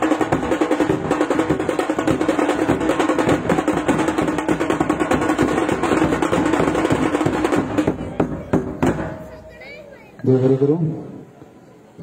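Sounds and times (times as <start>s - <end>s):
barrel drums playing fast rhythm: 0.0s - 9.3s.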